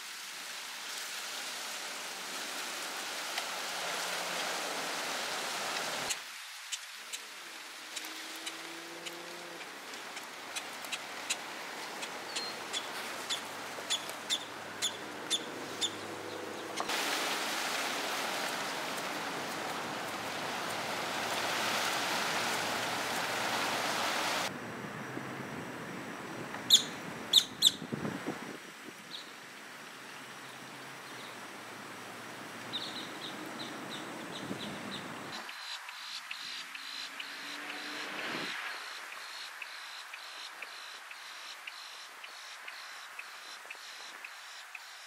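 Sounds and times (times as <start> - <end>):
bird chirping: 12.3 - 16.9
sharp bird calls: 26.7 - 27.8.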